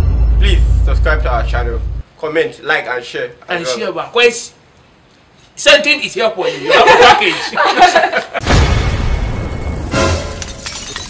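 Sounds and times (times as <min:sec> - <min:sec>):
glass shattering crash: 0:08.4 - 0:11.0
music: 0:08.4 - 0:11.0.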